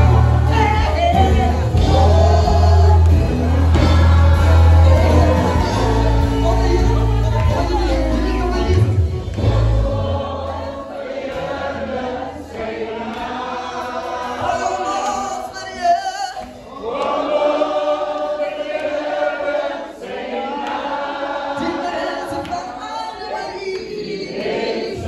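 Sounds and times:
man singing into a microphone: 0:00.0 - 0:09.3
group singing gospel song: 0:00.0 - 0:25.0.

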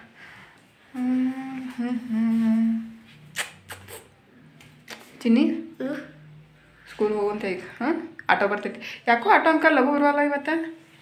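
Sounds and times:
person humming: 0:00.9 - 0:03.1.

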